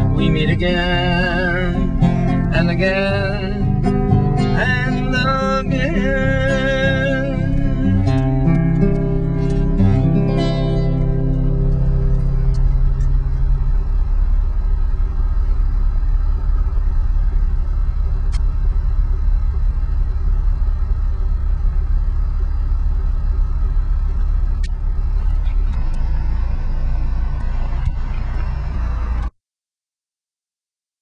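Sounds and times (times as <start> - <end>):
low rumbling noise: 0.0 - 29.3.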